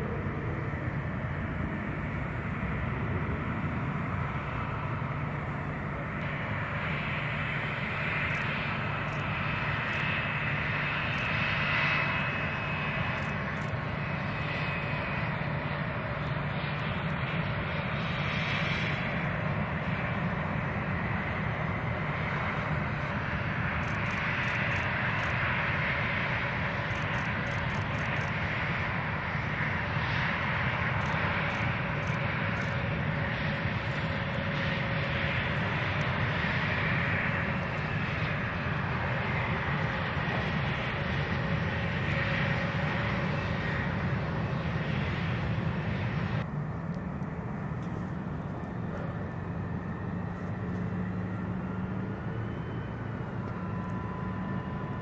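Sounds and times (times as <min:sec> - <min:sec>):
jet engine noise with whine: 0:00.0 - 0:55.0.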